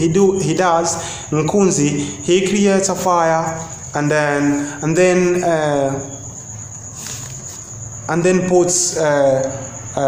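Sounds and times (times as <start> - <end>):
faint room noise: 0.0 - 10.0
high-pitched insect trill: 0.0 - 10.0.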